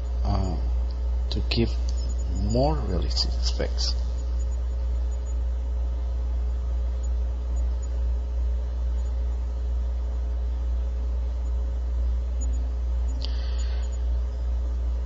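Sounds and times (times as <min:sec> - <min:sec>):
microphone line hum: 0:00.0 - 0:15.0.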